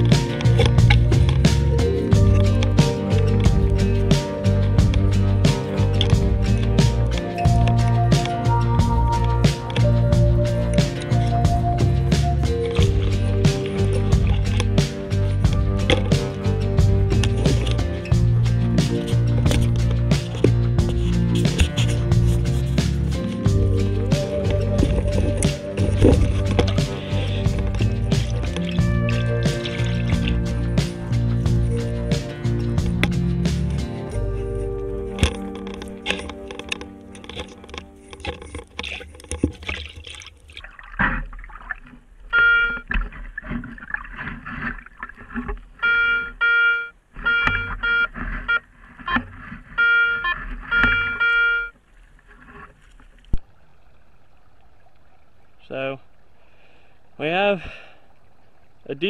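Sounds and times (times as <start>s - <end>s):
coil sweeping through water: 0.0s - 34.5s
background music with steady beat: 0.0s - 38.5s
metal detector beeping: 42.3s - 42.9s, 45.8s - 51.8s.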